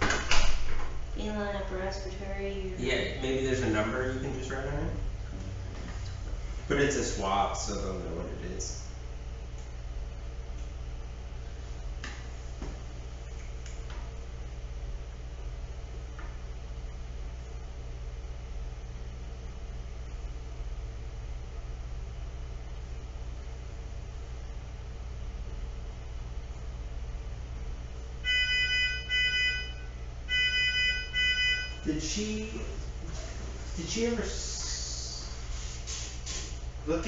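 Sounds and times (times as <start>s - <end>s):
equipment humming: 0.0s - 37.0s.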